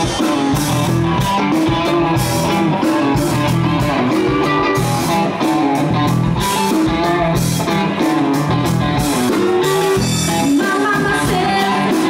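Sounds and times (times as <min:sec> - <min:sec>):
bass guitar: 0:00.0 - 0:12.0
drums: 0:00.0 - 0:12.0
electric guitars playing a riff: 0:00.0 - 0:12.0.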